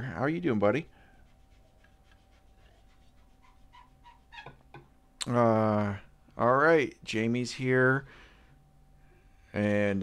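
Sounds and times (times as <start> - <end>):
faint steady electrical tone: 0.0 - 10.0.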